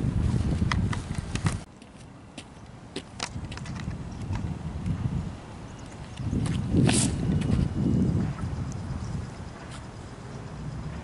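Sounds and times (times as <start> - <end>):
microphone handling noise: 0.0 - 1.7, 6.2 - 8.8
wind rumble on microphone: 0.0 - 1.7, 3.0 - 11.0.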